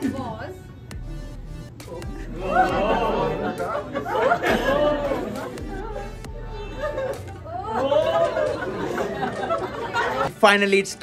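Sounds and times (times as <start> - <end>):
music playing: 0.0 - 11.0.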